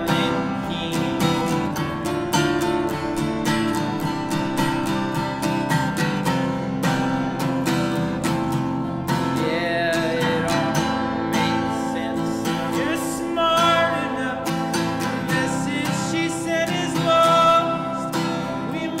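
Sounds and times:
high voice singing: 0.0 - 5.0, 9.1 - 19.0
acoustic guitar strumming: 0.0 - 19.0.

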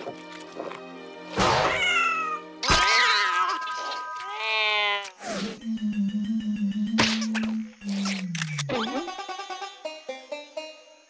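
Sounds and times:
cartoon background music: 0.0 - 4.0, 5.2 - 11.0
cartoon cat cries: 1.6 - 5.0.

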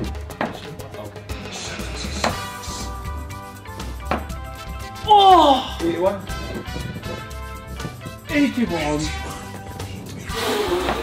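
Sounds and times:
background music with bass beat: 0.0 - 11.0.

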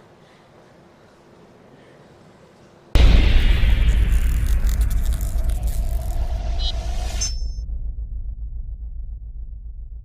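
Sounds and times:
deep rumble: 3.0 - 10.0.

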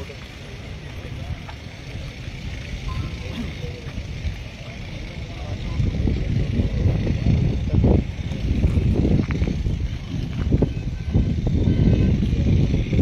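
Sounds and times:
faint voices: 0.0 - 13.0
wind buffeting microphone: 0.0 - 13.0.

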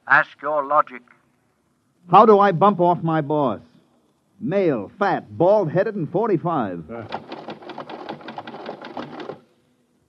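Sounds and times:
rapid mechanical clatter: 7.0 - 9.4.

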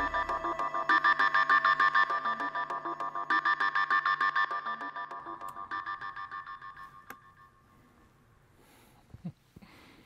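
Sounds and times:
synthesizer pulsed tone: 0.0 - 7.6.

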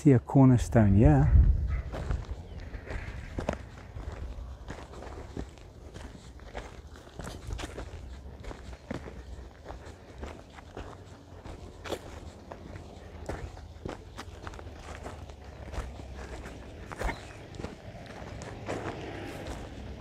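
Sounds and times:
footsteps on grass and dry earth: 0.0 - 20.0
steady low rumble: 0.7 - 20.0.

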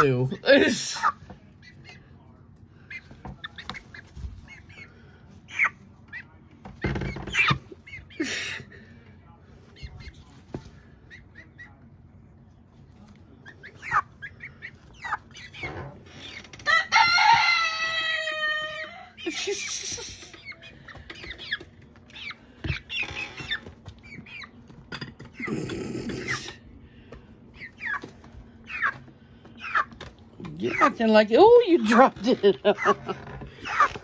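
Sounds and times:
young chickens clucking: 0.0 - 34.0.

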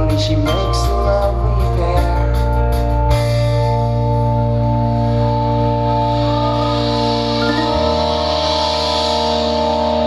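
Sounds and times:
held bass note: 3.1 - 10.0.

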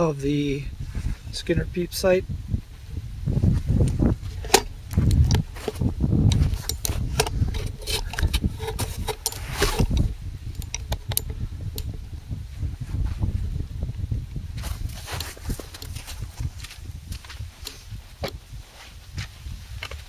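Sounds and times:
wind rumbling on microphone: 0.0 - 20.0
camera handling noise: 3.8 - 11.9.

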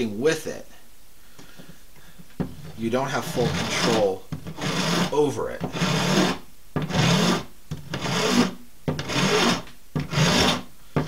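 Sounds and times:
rasp filing bone: 3.2 - 10.7.

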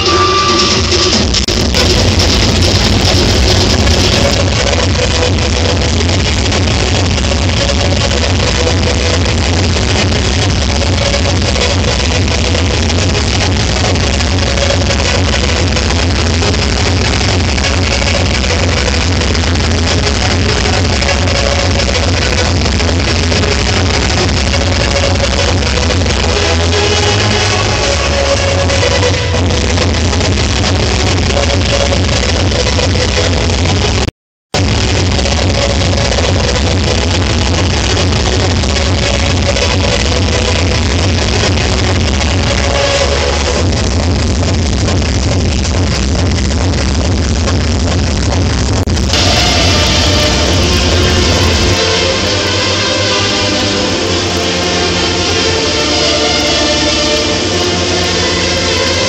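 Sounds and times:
electronic dance music: 0.0 - 59.0.

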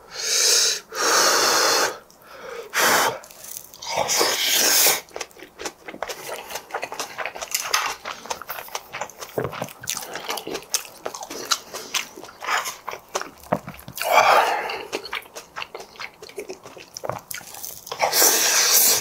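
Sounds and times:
close chewing with wet crunches: 4.8 - 19.0.

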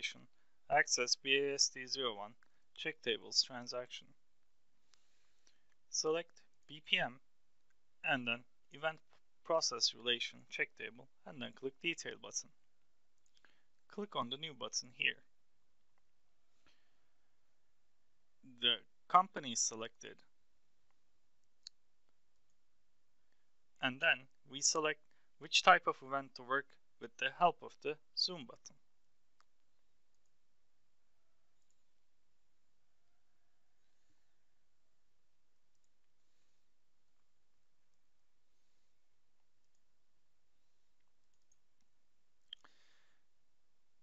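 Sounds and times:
faint mouse clicks: 31.6 - 31.9, 41.0 - 42.8.

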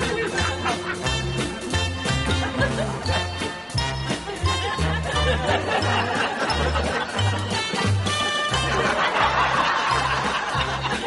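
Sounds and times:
canned laugh track: 0.0 - 11.0
light comic music: 0.0 - 11.0.

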